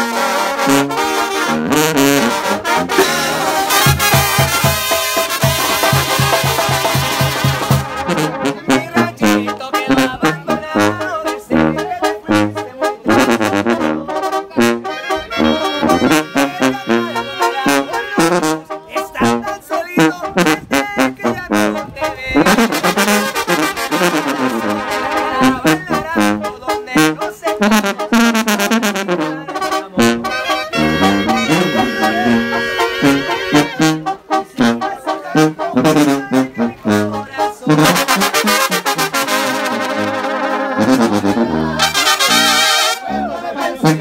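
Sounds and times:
brass band playing: 0.0s - 44.0s
tuba bass notes: 0.0s - 44.0s
drums: 3.0s - 8.2s
man singing: 8.4s - 23.3s, 24.6s - 44.0s.

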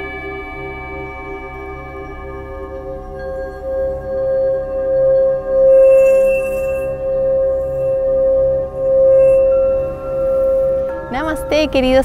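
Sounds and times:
singing bowl ringing tone: 0.0s - 12.0s.

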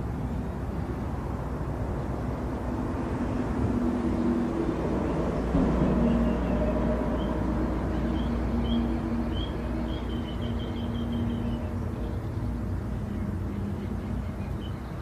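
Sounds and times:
low engine drone: 0.0s - 15.0s
bird chirping: 5.0s - 15.0s.

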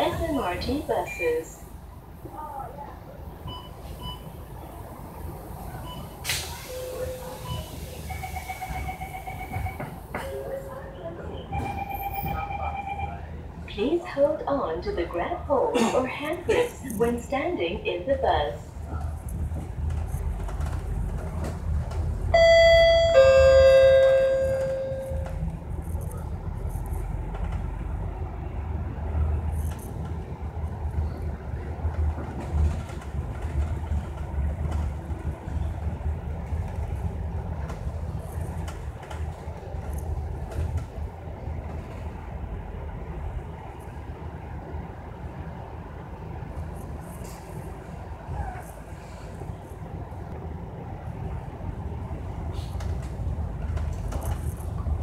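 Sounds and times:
bus engine and road rumble: 0.0s - 55.0s
two-tone bus bell chime: 6.7s - 10.8s, 11.6s - 13.2s, 22.4s - 25.4s.

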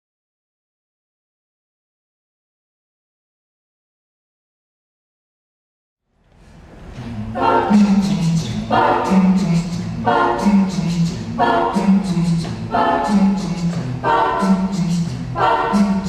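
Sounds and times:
a cappella vocal ensemble singing: 7.0s - 16.0s.

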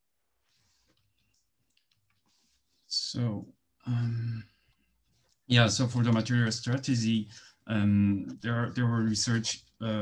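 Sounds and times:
person speaking: 2.5s - 10.0s.

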